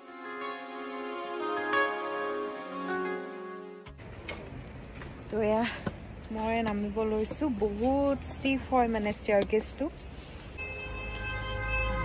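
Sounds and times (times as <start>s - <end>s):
outdoor background noise: 3.9s - 12.0s.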